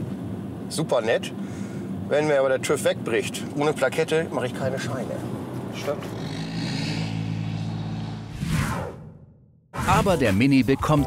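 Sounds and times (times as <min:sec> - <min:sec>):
short whoosh: 0:07.1 - 0:10.1.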